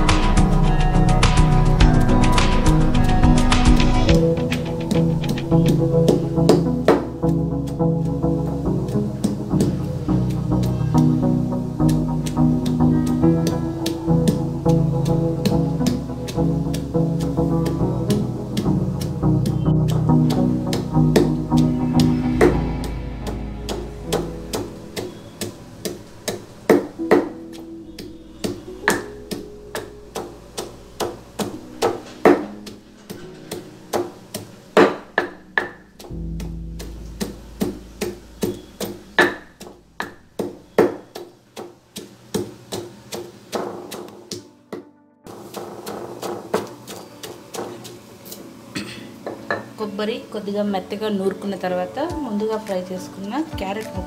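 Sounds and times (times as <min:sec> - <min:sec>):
guitar music: 0:00.0 - 0:34.4, 0:35.1 - 0:40.4
pestle pounding in stone mortar: 0:36.8 - 0:44.4, 0:45.3 - 0:48.0.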